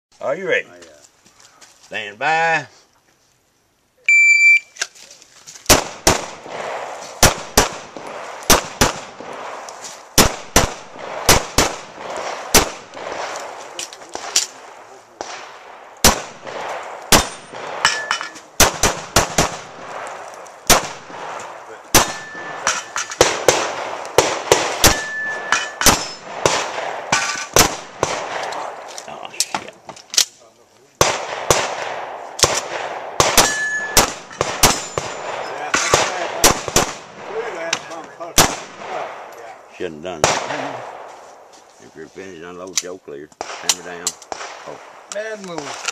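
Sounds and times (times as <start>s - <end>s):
pistol shots: 5.7s - 28.9s, 31.0s - 39.3s, 40.2s - 41.1s, 43.4s - 45.9s.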